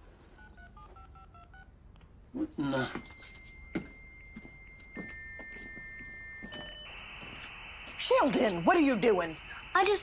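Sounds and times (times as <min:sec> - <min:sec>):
touch-tone keypad beeps: 0:00.5 - 0:01.6.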